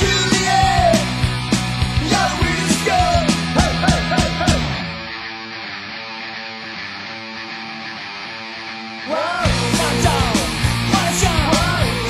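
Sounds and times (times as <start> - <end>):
electric guitar strumming chords: 0.0 - 12.0.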